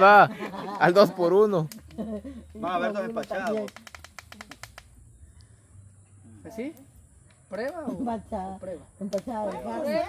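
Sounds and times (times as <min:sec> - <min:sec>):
sharp clicks: 0:03.2 - 0:05.5.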